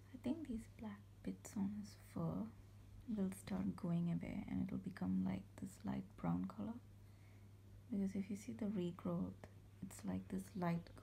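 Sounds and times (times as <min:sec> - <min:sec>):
woman speaking quietly: 0:00.0 - 0:06.8, 0:07.9 - 0:11.0.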